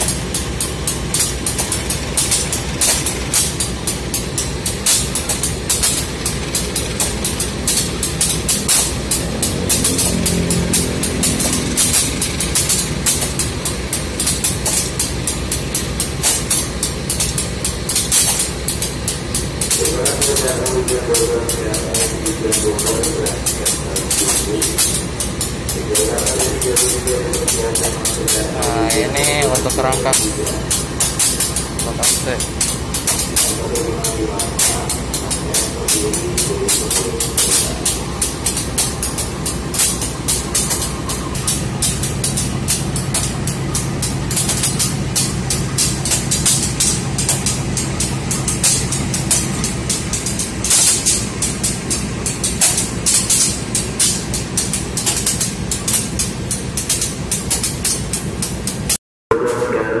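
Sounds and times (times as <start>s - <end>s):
diesel locomotive engine beat: 0.0s - 60.0s
steady low hum: 0.0s - 60.0s.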